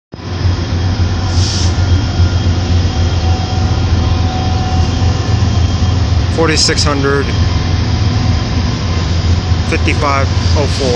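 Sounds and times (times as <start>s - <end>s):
diesel locomotives rumbling past: 0.1s - 10.9s.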